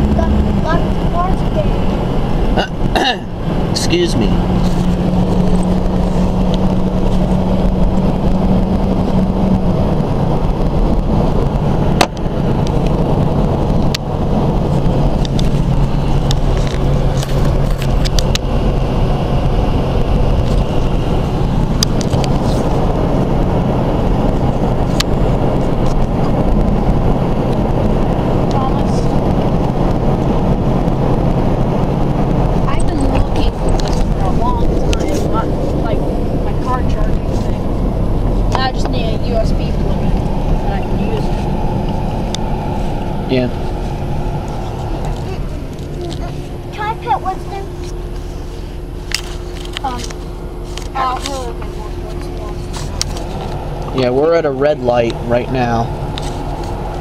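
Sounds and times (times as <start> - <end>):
car engine and road noise: 0.0 - 57.0
low hum: 0.0 - 57.0.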